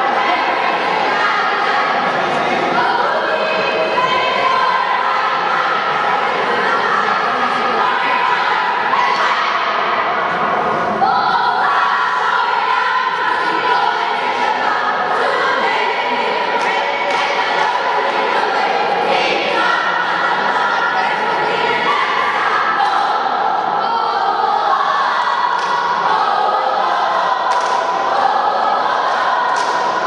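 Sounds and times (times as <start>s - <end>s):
crowd singing a cheer: 0.0s - 30.0s.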